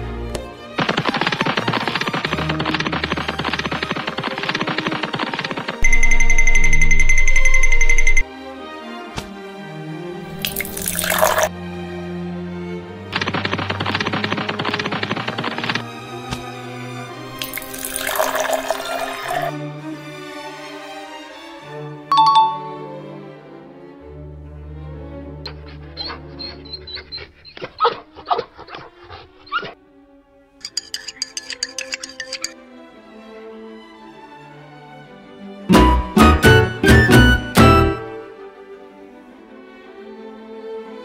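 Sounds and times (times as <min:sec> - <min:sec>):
background music: 0:00.0 - 0:41.0
milk pouring into glass with ice: 0:10.4 - 0:11.5, 0:17.4 - 0:19.5.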